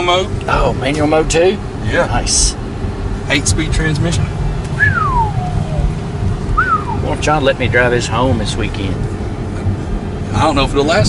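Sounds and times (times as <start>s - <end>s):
car engine rumble while driving: 0.0s - 11.0s
person whistling: 4.8s - 5.8s, 6.6s - 7.0s.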